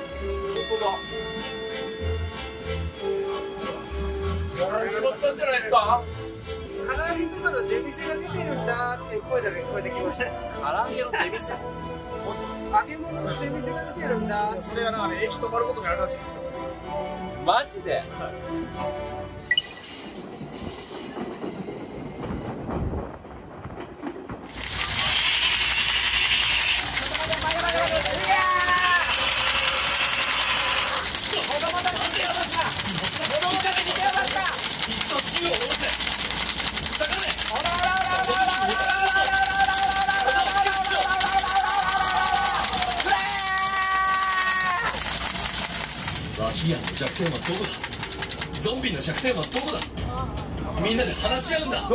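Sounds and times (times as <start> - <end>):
shrill hiss: 19.5 - 21.6, 24.9 - 26.9
loud rapid rattling in railcar: 19.8 - 51.8
voices crying out: 25.0 - 31.4, 37.7 - 45.0
man screaming: 28.2 - 31.1, 37.8 - 45.0.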